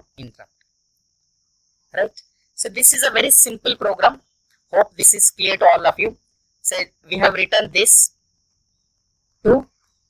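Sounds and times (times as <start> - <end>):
person speaking: 2.0 - 4.2, 4.8 - 8.1.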